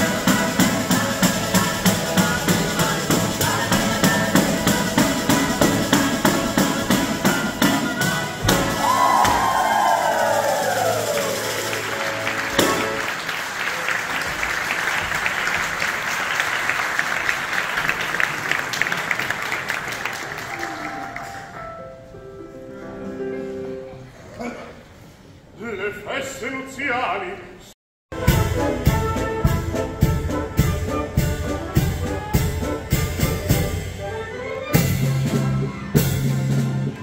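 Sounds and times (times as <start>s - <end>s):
folk dance music with tambourine: 0.0s - 13.1s, 28.1s - 37.0s
audience applauding in a hall: 8.7s - 21.8s.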